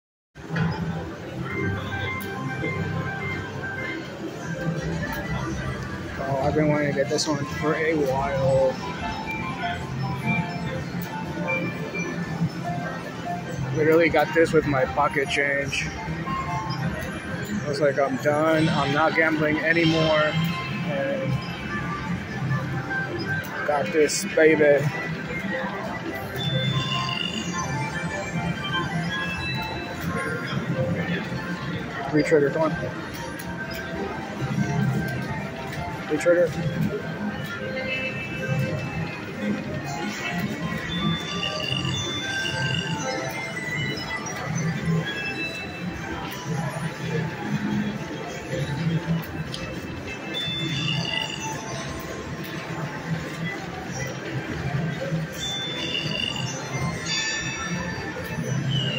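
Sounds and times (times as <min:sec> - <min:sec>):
slot machine noise: 0:00.4 - 0:58.9
electronic chimes and jingles: 0:55.0 - 0:58.9.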